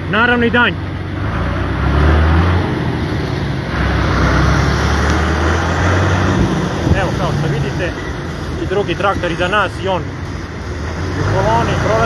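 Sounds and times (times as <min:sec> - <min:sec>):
road noise: 0:00.0 - 0:12.0
tractor engine drone: 0:00.0 - 0:12.0.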